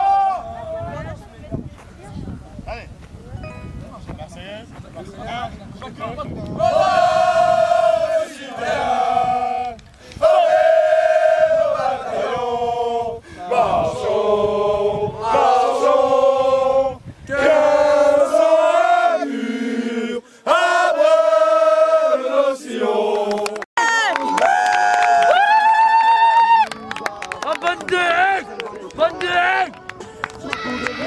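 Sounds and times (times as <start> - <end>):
men singing in unison: 6.6 - 23.6.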